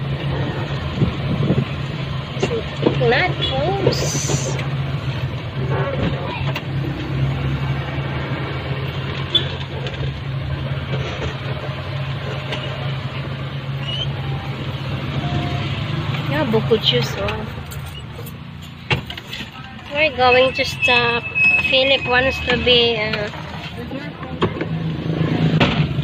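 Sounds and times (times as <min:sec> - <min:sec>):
road noise: 0:00.0 - 0:26.0
vehicle engine drone: 0:00.0 - 0:26.0.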